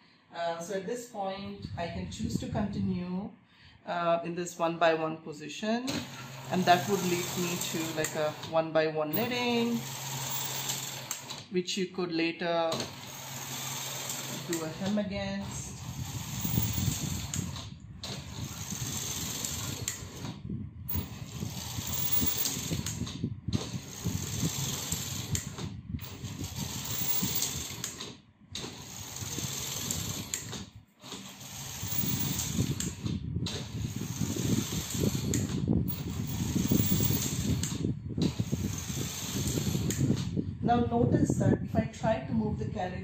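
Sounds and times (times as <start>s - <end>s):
knitting machine carriage clattering: 5.9s - 8.5s, 9.2s - 11.4s, 12.7s - 40.1s.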